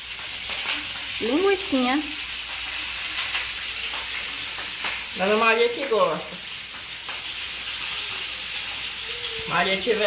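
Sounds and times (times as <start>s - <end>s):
food frying in a pan: 0.0s - 10.0s.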